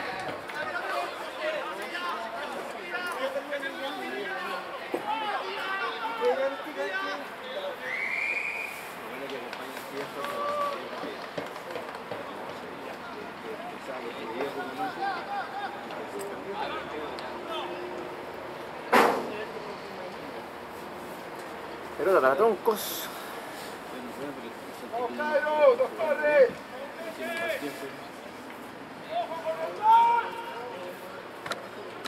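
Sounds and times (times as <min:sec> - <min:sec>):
distant crowd chatter: 0:00.0 - 0:32.0
sharp knock: 0:18.9 - 0:19.4.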